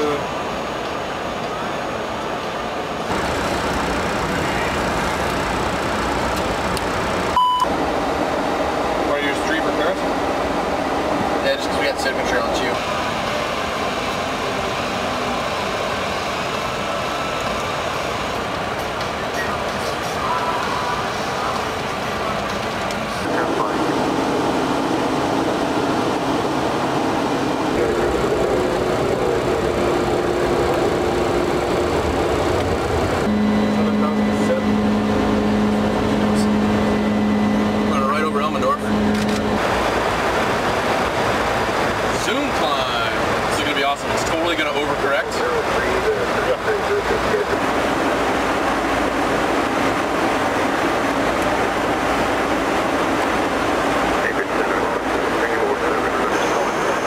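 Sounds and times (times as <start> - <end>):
jet engine hum: 0.0 - 57.0.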